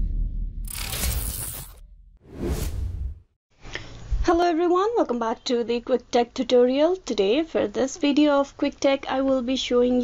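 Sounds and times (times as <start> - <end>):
deep bass: 0.0 - 0.7
whoosh sound effects: 2.3 - 3.2.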